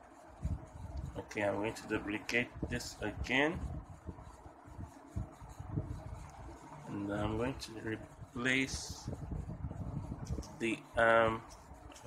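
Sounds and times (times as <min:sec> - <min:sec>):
soft low thumps: 0:03.6 - 0:06.9, 0:08.1 - 0:10.6.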